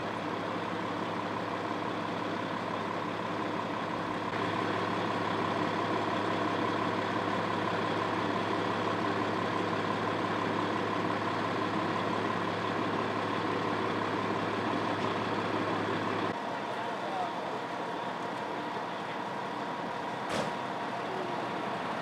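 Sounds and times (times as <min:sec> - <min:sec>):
diesel engine idling: 0:00.0 - 0:22.0.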